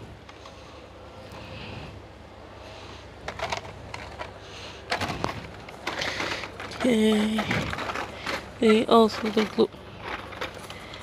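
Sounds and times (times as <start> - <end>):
shop background hum: 0.0 - 11.0
plastic packs crackling: 4.9 - 11.0.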